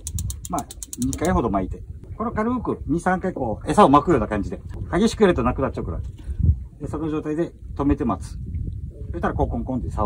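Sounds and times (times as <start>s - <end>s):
fishing reel clicking rapidly: 0.0s - 1.5s.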